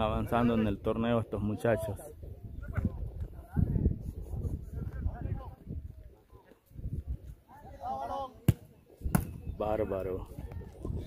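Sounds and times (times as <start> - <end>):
ball being kicked thud: 8.4 - 9.4.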